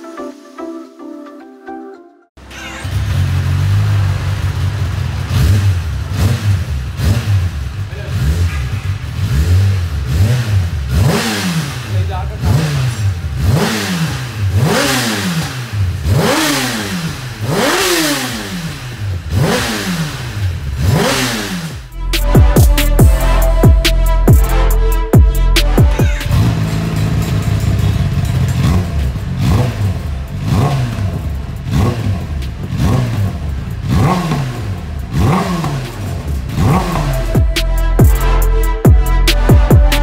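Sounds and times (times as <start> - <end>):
motorcycle engine revving: 2.4 - 40.0.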